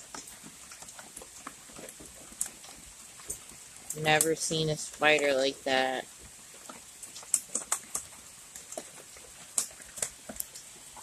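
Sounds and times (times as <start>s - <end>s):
rain drops ticking: 0.0s - 11.0s.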